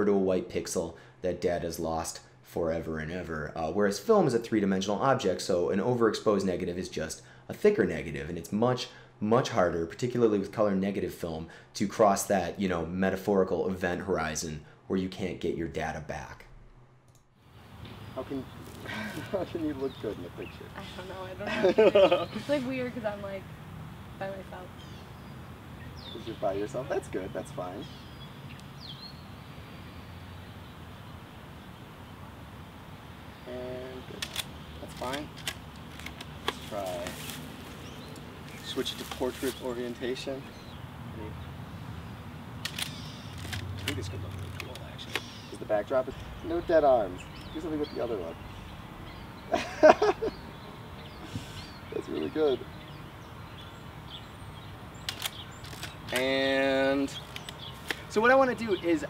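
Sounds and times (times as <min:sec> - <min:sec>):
low background noise: 0:00.0 - 0:59.0
high bird chirps: 0:24.1 - 0:32.2, 0:42.8 - 0:43.4, 0:44.3 - 0:59.0
sharp clicks: 0:34.1 - 0:36.7, 0:42.6 - 0:45.6, 0:55.0 - 0:56.4, 0:57.1 - 0:58.2.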